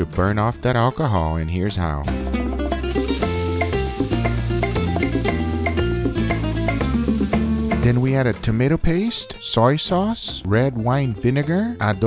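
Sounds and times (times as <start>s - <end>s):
background music: 0.0s - 12.0s
food sizzling in a pan: 2.2s - 8.3s.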